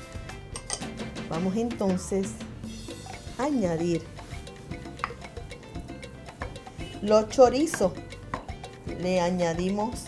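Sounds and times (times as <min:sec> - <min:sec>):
soft background music: 0:00.0 - 0:10.0
spoon stirring and scraping in pot: 0:02.7 - 0:08.9.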